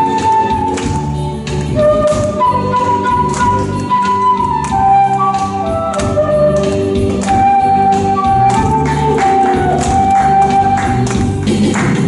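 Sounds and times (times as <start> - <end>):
bamboo flute melody: 0.0 - 11.5
backing track with steady beat: 0.0 - 12.0.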